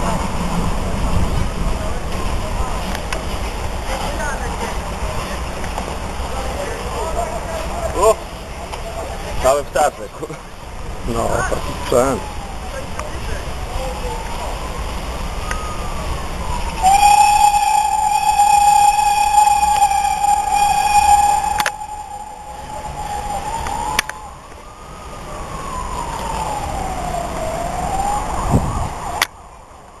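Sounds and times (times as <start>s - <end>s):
siren wailing: 11.1s - 13.0s, 13.7s - 29.2s
loud steady high tone: 16.6s - 24.9s.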